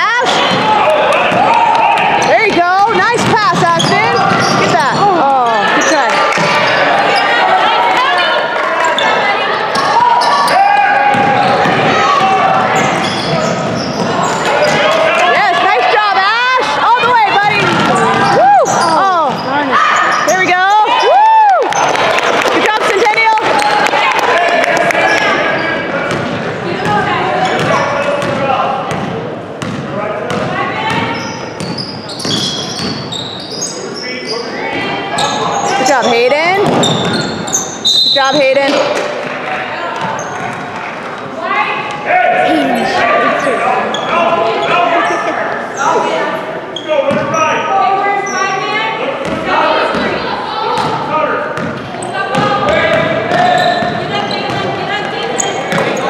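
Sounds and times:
spectators calling out: 0.0s - 22.0s, 42.0s - 46.9s
shoes squeaking: 2.1s - 7.6s, 8.8s - 15.2s, 30.8s - 38.8s, 53.3s - 56.0s
basketball bouncing on hardwood floor: 3.2s - 4.7s, 17.6s - 18.3s.

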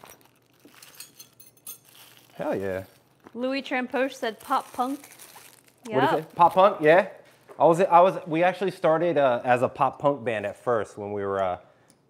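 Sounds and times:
metallic clinking of small tools: 0.0s - 2.3s.

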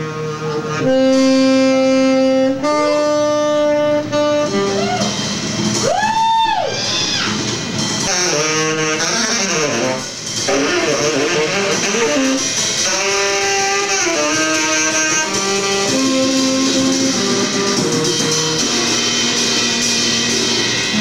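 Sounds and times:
saxophone playing held notes: 0.0s - 5.5s, 8.0s - 20.0s
drum kit with cymbals: 0.0s - 21.0s.

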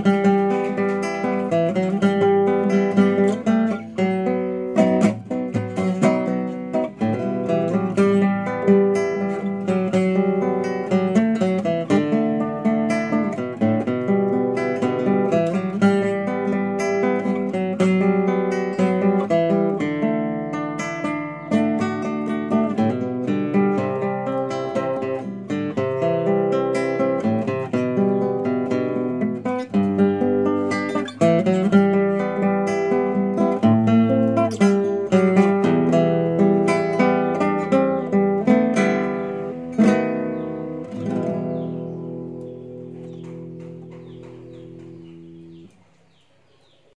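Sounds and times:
plucked acoustic guitar: 0.0s - 46.9s.

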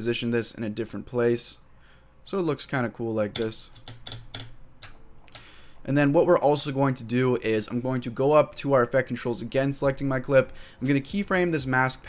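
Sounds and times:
mouse and keyboard clicks: 3.3s - 5.8s.

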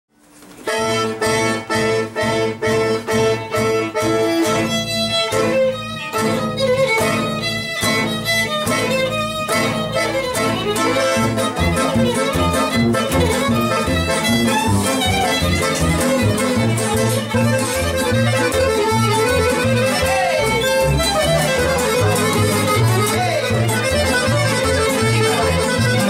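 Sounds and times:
acoustic guitar strumming: 0.3s - 26.0s
piano accordion: 0.4s - 26.0s
fiddle melody: 0.5s - 26.0s.

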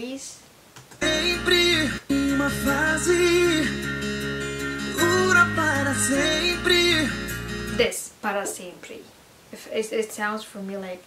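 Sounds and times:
man singing a slow ballad: 1.0s - 7.4s
acoustic guitar: 1.0s - 7.9s.

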